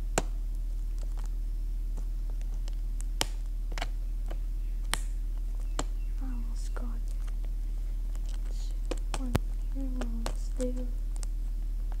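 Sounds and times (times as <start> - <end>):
steady low hum: 0.0 - 12.0
sharp clicks: 2.0 - 7.5, 8.1 - 12.0.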